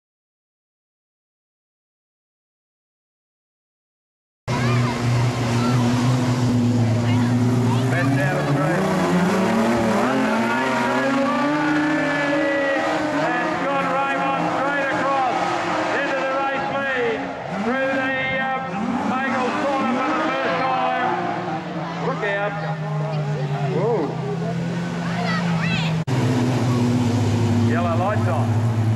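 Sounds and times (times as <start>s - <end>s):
racing car engines revving: 4.5s - 28.9s.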